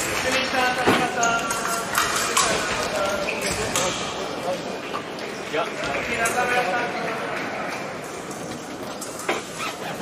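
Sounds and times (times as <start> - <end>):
voices in sports hall: 0.0 - 10.0.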